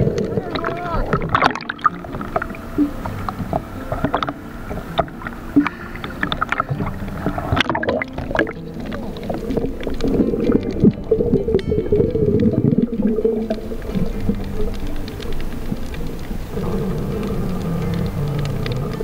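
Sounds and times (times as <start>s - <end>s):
background music: 0.0s - 19.0s
muffled underwater sound: 0.0s - 19.0s.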